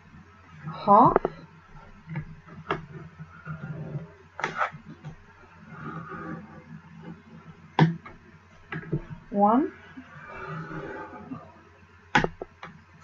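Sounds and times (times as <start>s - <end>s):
scoring tool scraping on board: 2.1s - 7.6s, 9.8s - 11.5s.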